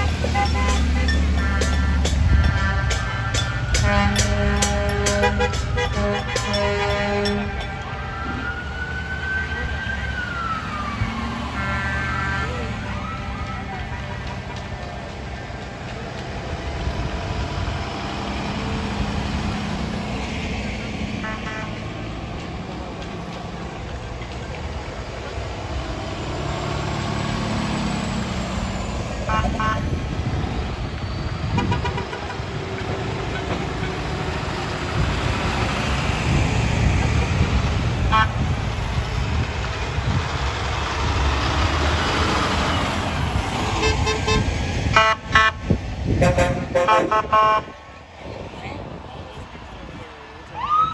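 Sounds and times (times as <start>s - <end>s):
vehicle horns honking: 0.0s - 7.8s, 21.2s - 21.8s, 29.2s - 30.0s, 31.5s - 32.3s, 38.0s - 38.4s, 43.7s - 47.7s
heavy vehicles rumbling past: 0.0s - 50.9s.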